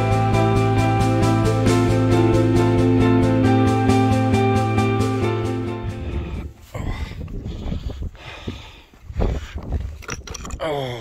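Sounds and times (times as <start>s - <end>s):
background music: 0.0s - 6.6s
wind buffeting microphone: 5.8s - 10.6s.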